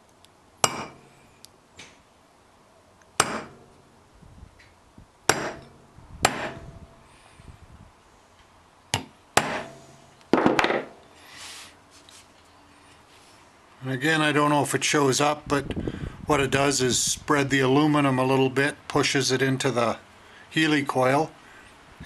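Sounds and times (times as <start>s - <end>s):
hammer tapping punch on metal: 0.6s - 1.1s, 3.2s - 3.7s, 5.3s - 6.7s, 8.9s - 9.9s.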